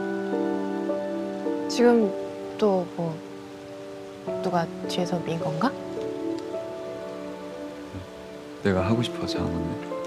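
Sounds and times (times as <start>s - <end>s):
faint hiss: 0.0s - 10.0s
soft sustained chords: 0.0s - 10.0s.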